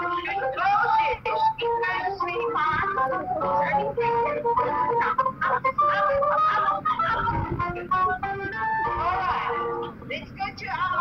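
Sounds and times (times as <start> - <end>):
melody of held notes: 0.0 - 10.0.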